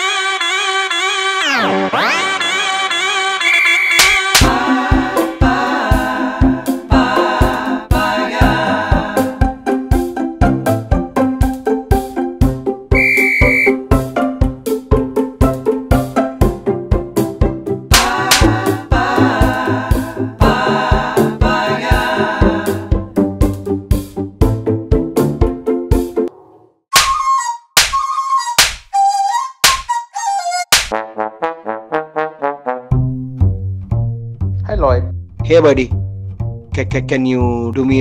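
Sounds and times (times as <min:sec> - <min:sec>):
held whistle-like note: 0:02.4 - 0:04.3, 0:13.0 - 0:13.8, 0:27.0 - 0:30.7
background film score: 0:03.5 - 0:38.0
sharp percussive hits: 0:04.0 - 0:04.5, 0:17.9 - 0:18.6, 0:27.0 - 0:27.2, 0:27.8 - 0:28.0, 0:28.6 - 0:28.9, 0:30.7 - 0:31.0
background music with low thumps: 0:32.9 - 0:38.0.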